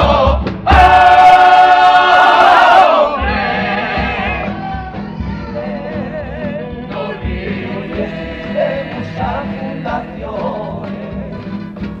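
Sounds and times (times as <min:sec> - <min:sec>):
male chorus singing in harmony: 0:00.0 - 0:11.6
low drum beats: 0:00.0 - 0:12.0
guitar: 0:03.2 - 0:12.0.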